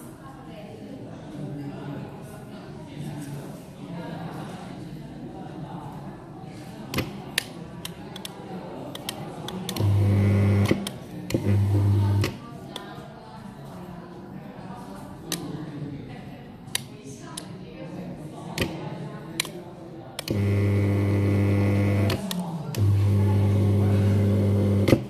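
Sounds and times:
blind motor humming: 0:09.7 - 0:12.4, 0:20.3 - 0:25.0.

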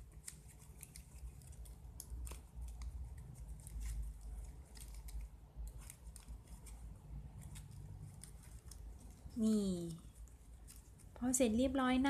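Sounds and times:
ribbon crinkling and rustling: 0:00.0 - 0:12.0.

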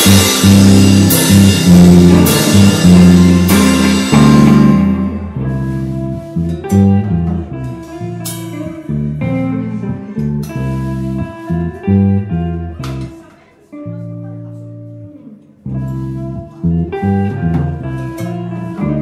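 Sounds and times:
live blues band with guitar: 0:00.0 - 0:19.0.

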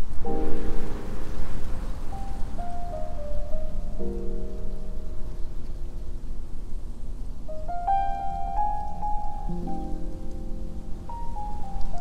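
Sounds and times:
background hiss: 0:00.0 - 0:12.0
solo piano playing: 0:00.0 - 0:12.0.

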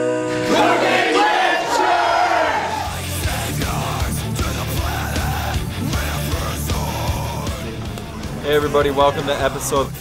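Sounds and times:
voices yelling: 0:00.5 - 0:03.1.

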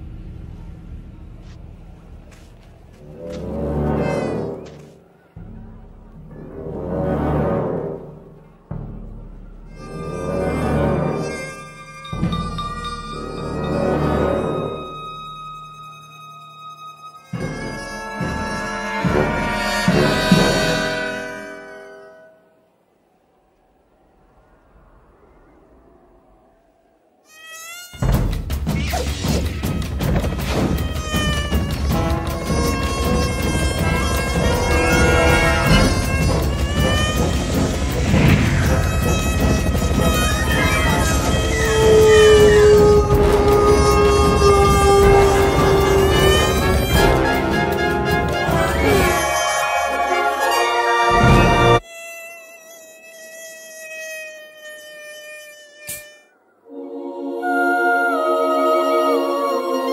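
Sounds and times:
steady droning tones: 0:00.0 - 0:27.3
mosquito high buzzing whine: 0:09.8 - 0:22.5, 0:25.5 - 0:28.3, 0:30.8 - 0:56.8
loud sound cut off: 0:32.4 - 0:50.3.

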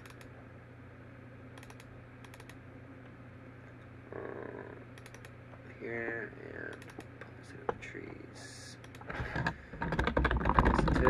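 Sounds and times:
computer mouse clicking: 0:00.0 - 0:00.3, 0:01.6 - 0:02.6, 0:05.0 - 0:05.4, 0:06.7 - 0:07.2, 0:08.8 - 0:09.1
low electrical hum: 0:00.0 - 0:11.0.

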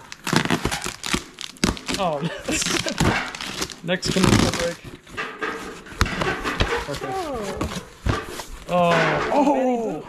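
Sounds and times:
sharp crack: 0:00.0 - 0:04.8
tape tearing: 0:00.0 - 0:09.2
cardboard rustling: 0:00.0 - 0:09.5.

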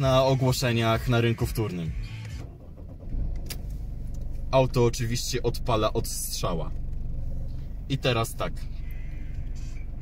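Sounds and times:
diesel engine starting and idling: 0:00.0 - 0:10.0.

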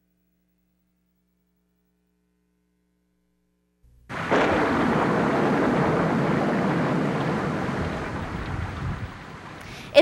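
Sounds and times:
storm rushing noise: 0:04.1 - 0:10.0.

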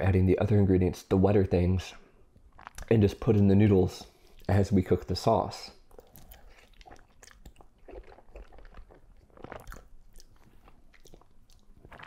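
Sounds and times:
man chewing noodles: 0:05.9 - 0:12.0.

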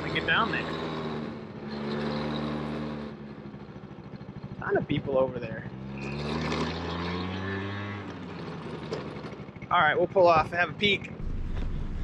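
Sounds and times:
moped engine running: 0:03.1 - 0:06.8, 0:07.6 - 0:12.0.

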